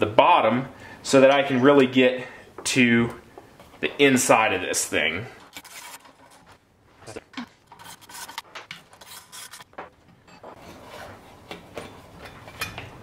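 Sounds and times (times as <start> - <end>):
tool clicks and metal scrapes: 5.4 - 6.5, 7.7 - 13.0
soft rubbing and handling: 5.4 - 12.6.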